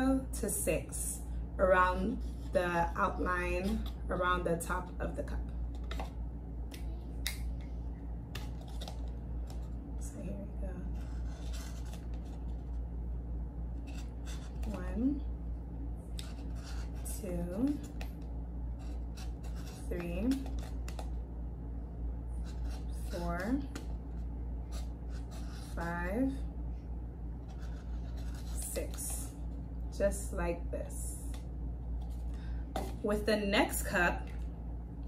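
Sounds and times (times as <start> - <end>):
low steady hum: 0.0 - 35.0
marker writing on foam cup: 10.9 - 12.4, 16.2 - 17.2, 18.8 - 21.1, 22.4 - 23.5, 24.7 - 26.0, 27.5 - 29.2.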